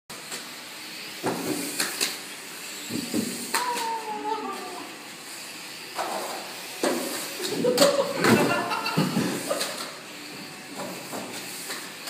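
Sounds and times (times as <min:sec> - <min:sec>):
drawn-out voice-like sound: 0:03.6 - 0:05.1.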